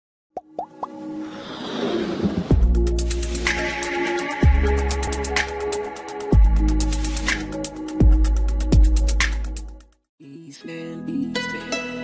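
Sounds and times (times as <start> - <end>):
electronic music riser: 1.0 - 7.9.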